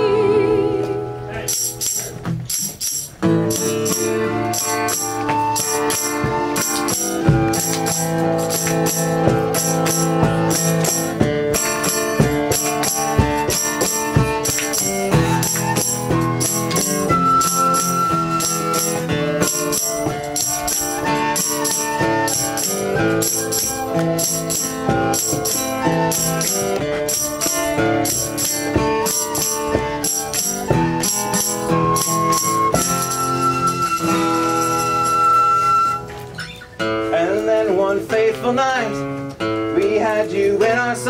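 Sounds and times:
guitar chords: 0.0s - 41.0s
tambourine beat: 1.5s - 35.7s
tin whistle melody: 3.4s - 36.8s.

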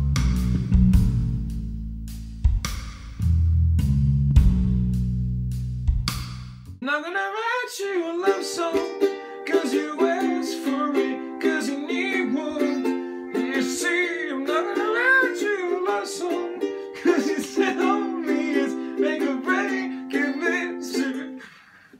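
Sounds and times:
man singing: 6.8s - 21.6s
ukulele strumming chords: 8.0s - 21.4s.

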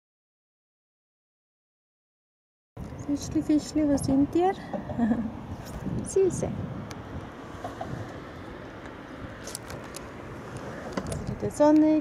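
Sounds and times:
boat engine rumble: 2.8s - 12.0s.

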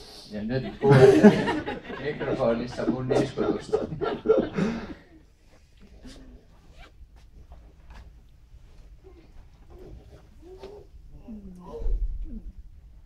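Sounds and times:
man speaking through a microphone: 2.0s - 4.2s.

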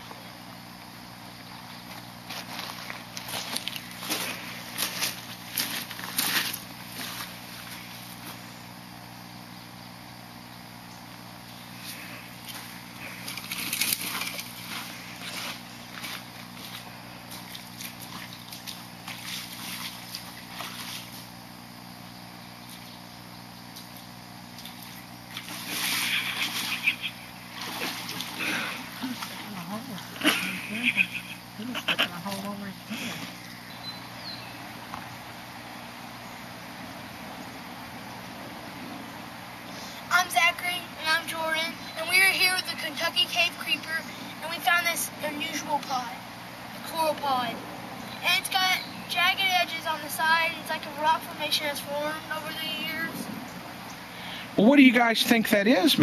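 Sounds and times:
footsteps crunching on bank: 1.6s - 8.5s, 11.8s - 21.4s
footsteps sloshing through water: 1.8s - 8.4s, 11.8s - 21.4s, 22.6s - 23.0s, 23.7s - 30.7s.

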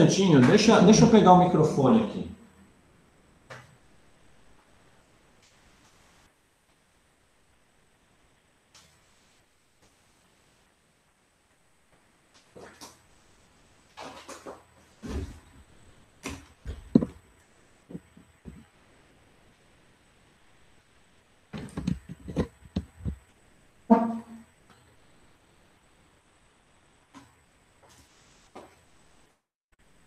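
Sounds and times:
microphone handling knocks: 16.3s - 17.2s, 17.9s - 18.7s, 21.6s - 23.2s.

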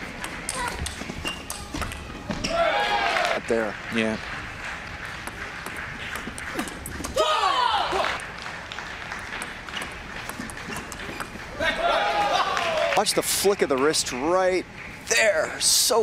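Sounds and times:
table tennis ball clicks: 5.1s - 7.2s, 9.3s - 11.5s
loud high-pitched shout: 7.2s - 8.2s.

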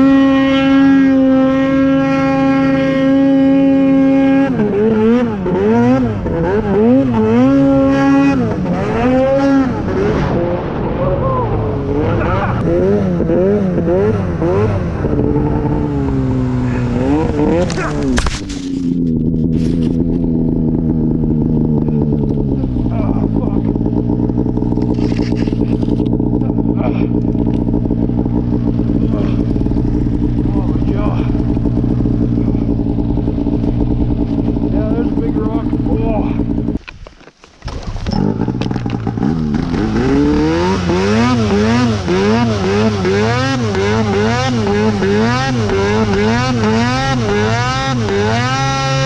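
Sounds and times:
snowmobile engine revving: 0.0s - 36.9s, 37.6s - 49.0s.

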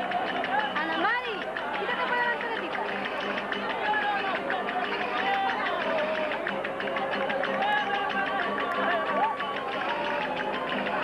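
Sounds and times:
crowd chatter: 0.0s - 11.0s
folk band percussion clatter: 0.0s - 11.0s.

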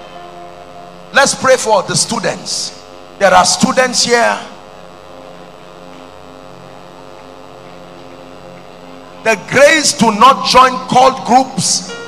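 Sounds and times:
sustained keyboard chord: 0.0s - 12.0s.

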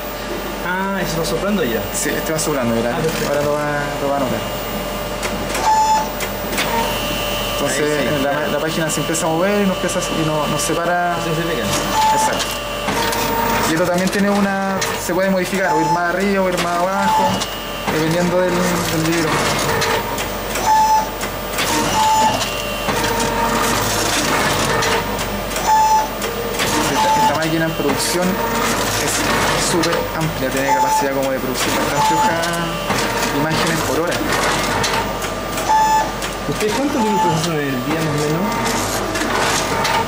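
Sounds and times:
motors whirring: 0.0s - 40.0s
short steady machine tone: 4.1s - 10.4s, 19.8s - 28.8s.

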